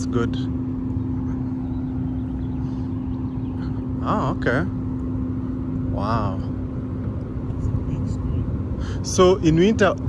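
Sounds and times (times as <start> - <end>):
constant droning hum: 0.0 - 10.0
low outdoor rumble: 0.0 - 10.0.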